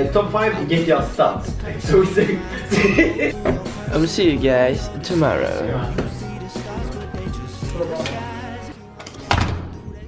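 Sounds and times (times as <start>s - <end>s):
background music: 0.0s - 10.0s
door shutting thump: 9.3s - 9.8s.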